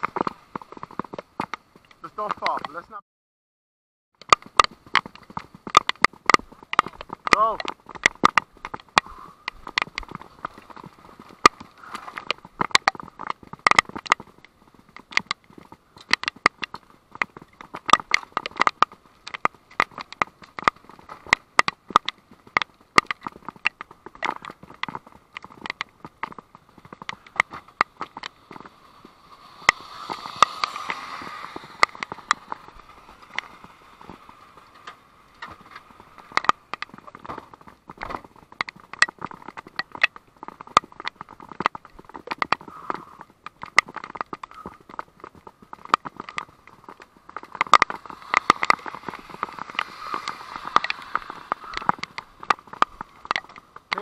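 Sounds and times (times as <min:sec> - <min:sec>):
raindrops pattering: 0:04.2 - 0:54.0.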